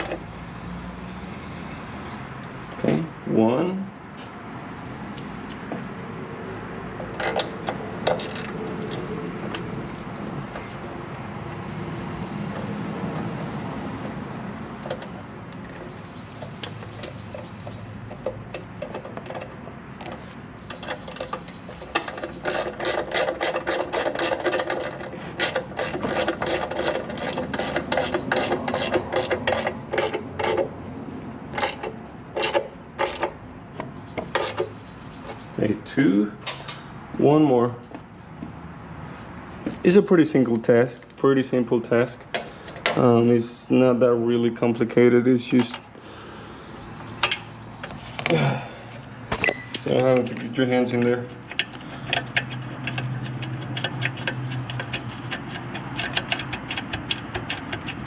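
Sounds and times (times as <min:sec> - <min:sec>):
metal parts rubbing: 0:08.1 - 0:08.6, 0:20.1 - 0:30.7, 0:31.5 - 0:33.4, 0:34.3 - 0:34.7, 0:49.4 - 0:58.0.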